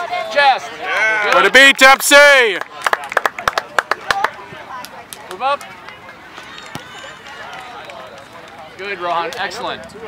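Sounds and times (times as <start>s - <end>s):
spectators clapping: 0.9s - 6.0s
faint distant voices: 2.6s - 10.0s.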